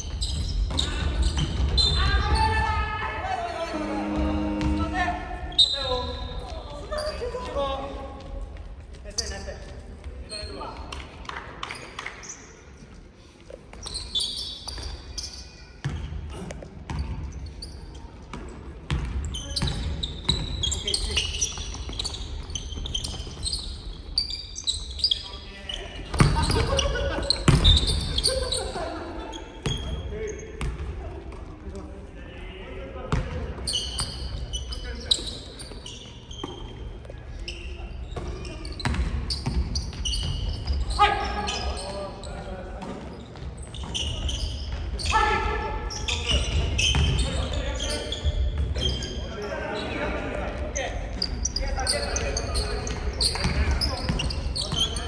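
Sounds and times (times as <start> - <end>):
sneakers squeaking: 0.0 - 11.0, 11.6 - 31.7, 33.1 - 55.0
players calling out: 0.7 - 7.4.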